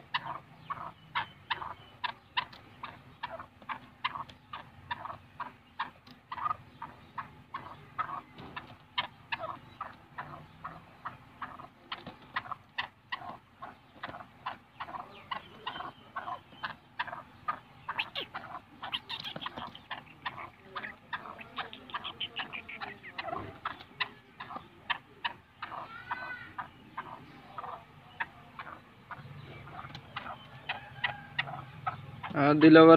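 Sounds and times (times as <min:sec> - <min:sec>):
bird clucking calls: 0:00.0 - 0:32.9.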